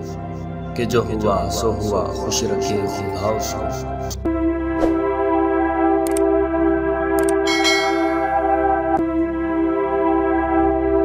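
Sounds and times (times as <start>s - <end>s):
organ-like music drone: 0.0s - 11.0s
bell chime sound effect: 7.4s - 8.5s.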